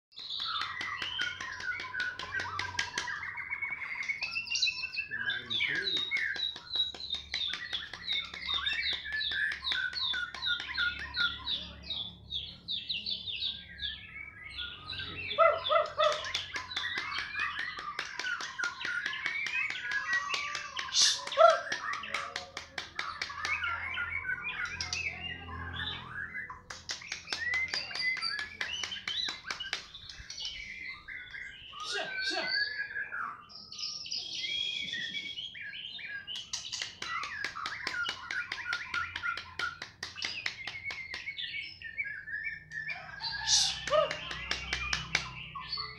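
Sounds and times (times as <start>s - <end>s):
songbirds singing: 0.1s - 45.9s.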